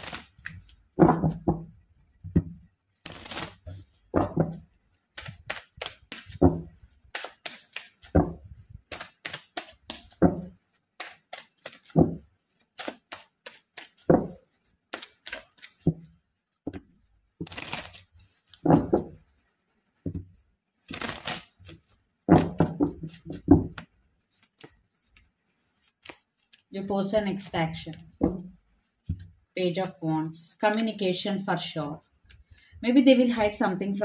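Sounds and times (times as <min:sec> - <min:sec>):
cards being shuffled: 0:00.0 - 0:01.5, 0:02.4 - 0:16.1, 0:16.7 - 0:19.2, 0:20.8 - 0:26.7.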